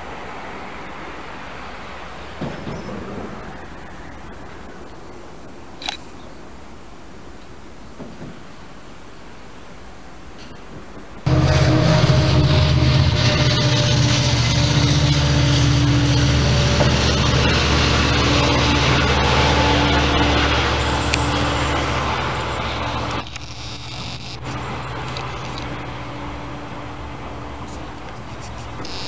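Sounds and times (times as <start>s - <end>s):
passenger train passing: 0.0s - 5.8s, 9.8s - 28.9s.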